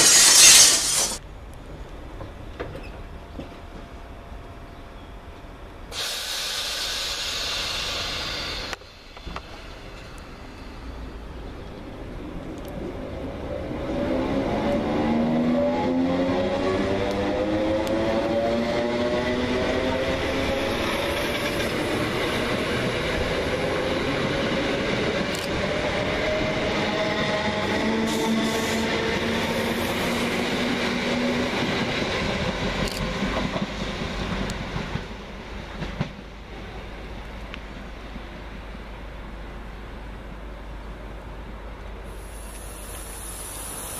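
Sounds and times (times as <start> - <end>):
train traction motors whining: 0.0 - 1.2
wheels rumbling on rail: 6.6 - 43.9.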